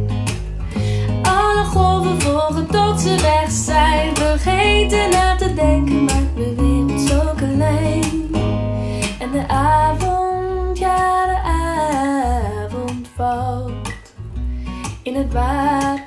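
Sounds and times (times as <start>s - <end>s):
guitar and bass: 0.0s - 16.0s
woman singing pop song: 0.0s - 16.0s.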